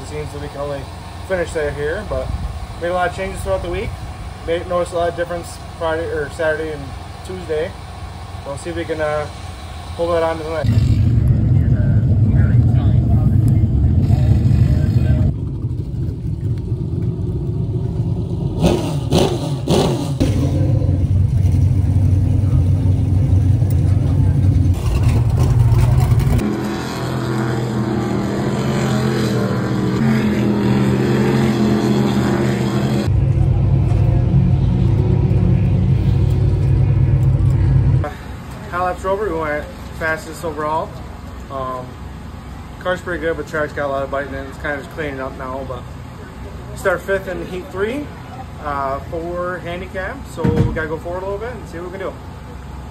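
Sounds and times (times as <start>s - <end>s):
race car engines running: 0.0s - 52.9s.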